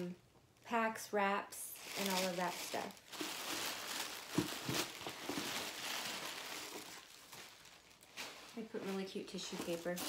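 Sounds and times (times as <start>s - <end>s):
woman speaking: 0.0s - 3.0s, 8.6s - 10.0s
plastic wrap crinkling: 1.5s - 10.0s.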